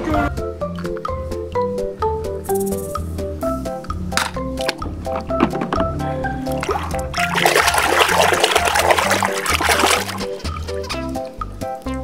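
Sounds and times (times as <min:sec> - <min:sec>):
background music with bass: 0:00.0 - 0:12.0
water splashing in a tub: 0:06.5 - 0:11.1.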